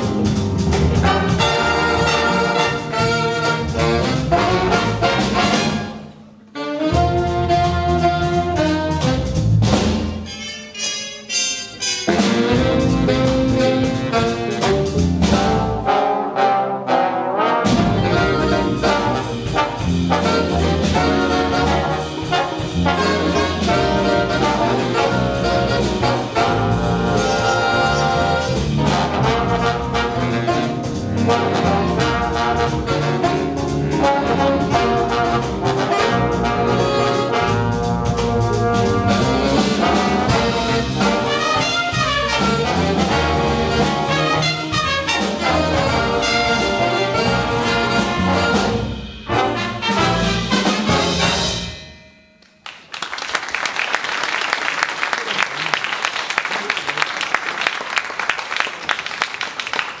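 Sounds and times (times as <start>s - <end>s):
jazz big band playing: 0.0s - 52.3s
audience applauding: 52.6s - 60.0s.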